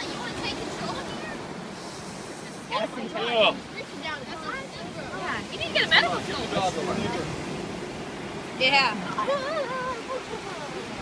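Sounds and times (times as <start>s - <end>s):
ocean surf washing on beach: 0.0s - 11.0s.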